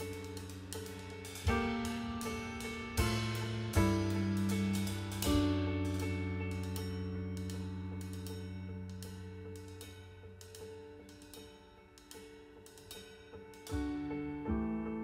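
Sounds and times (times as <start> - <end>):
light cymbal taps: 0.0 - 13.9
piano chord ringing: 0.0 - 15.0
soft piano notes: 0.0 - 15.0.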